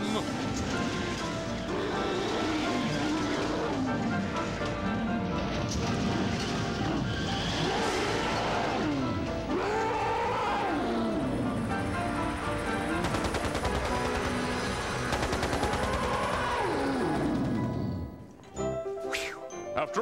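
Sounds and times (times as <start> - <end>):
animatronic roars: 0.0 - 18.1
dramatic music: 0.0 - 20.0
rapid rattle of sharp cracks: 11.8 - 17.8.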